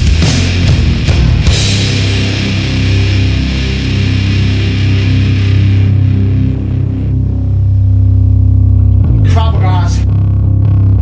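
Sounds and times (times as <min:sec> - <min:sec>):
heavy metal guitar and bass chord: 0:00.0 - 0:11.0.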